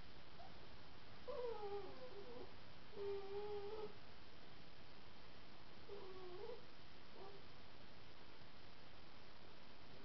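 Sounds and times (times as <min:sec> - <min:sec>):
dog whining: 0:01.3 - 0:04.0, 0:05.9 - 0:06.6, 0:07.2 - 0:07.4.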